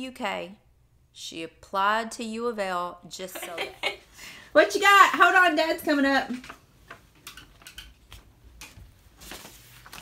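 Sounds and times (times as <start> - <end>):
paper rustling: 6.3 - 10.0.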